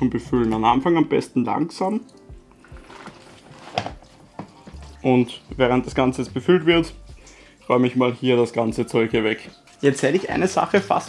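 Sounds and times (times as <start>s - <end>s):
faint background music: 0.0s - 11.0s
water trickling from hose: 0.0s - 11.0s.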